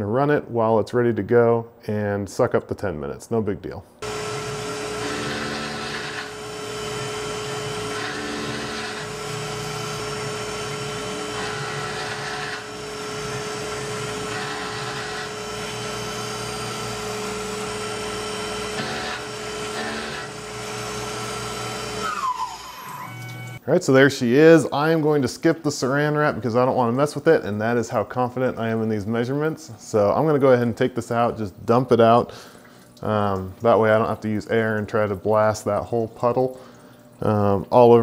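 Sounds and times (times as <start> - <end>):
milling machine spindle whine: 4.0 - 23.6.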